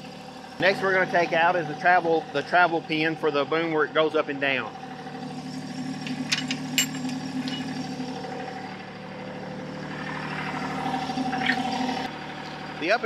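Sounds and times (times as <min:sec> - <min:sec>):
tractor diesel engine idling: 0:00.0 - 0:13.0
metallic clinks of pin: 0:06.3 - 0:07.7.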